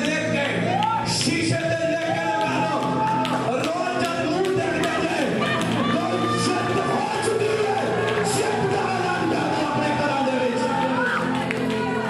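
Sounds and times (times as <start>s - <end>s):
instrumental backing music: 0.0s - 12.0s.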